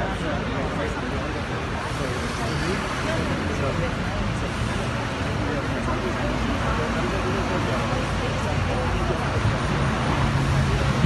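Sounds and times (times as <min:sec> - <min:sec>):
crowd talking indistinctly: 0:00.0 - 0:11.0
road traffic hum: 0:00.0 - 0:11.0.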